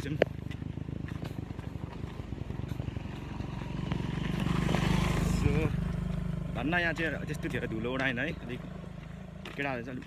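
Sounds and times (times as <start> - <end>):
motorcycle engine approaching: 0.0 - 10.0.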